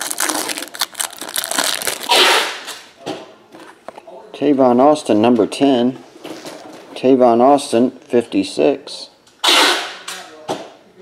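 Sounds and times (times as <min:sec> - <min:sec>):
plastic wrapper tearing and crinkling: 0:00.0 - 0:02.8.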